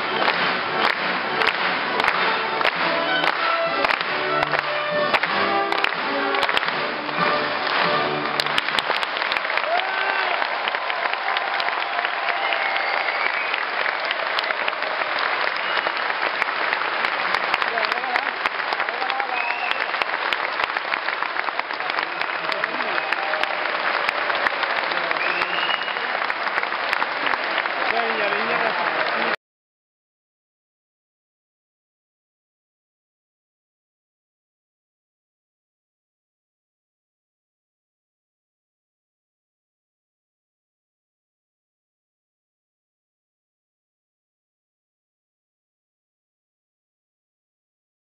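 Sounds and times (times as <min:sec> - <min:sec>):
orchestra playing: 0:00.0 - 0:09.1
audience applause: 0:00.0 - 0:29.4.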